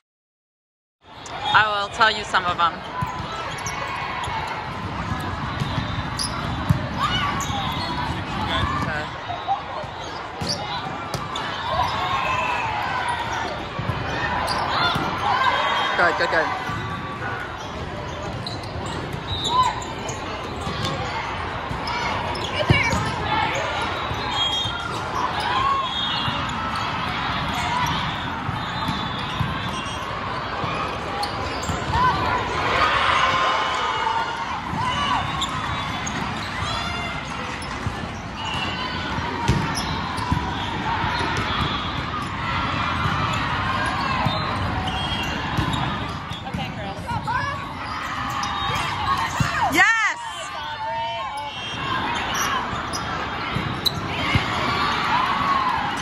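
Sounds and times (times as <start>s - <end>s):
chatter and calls of people: 1.0s - 56.0s
shoes squeaking on court: 2.4s - 12.4s, 13.0s - 32.4s, 34.8s - 42.4s, 43.0s - 49.8s, 51.3s - 55.1s
volleyballs struck and bouncing: 4.3s - 9.0s, 35.8s - 47.2s.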